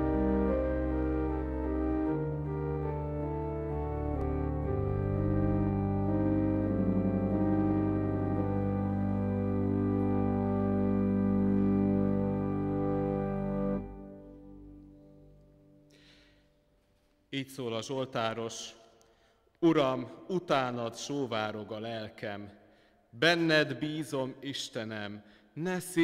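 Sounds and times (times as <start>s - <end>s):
church organ chords: 0.0s - 15.8s.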